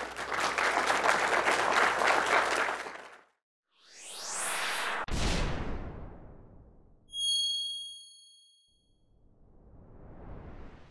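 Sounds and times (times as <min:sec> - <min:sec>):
bright ringing chime: 0:07.1 - 0:08.8.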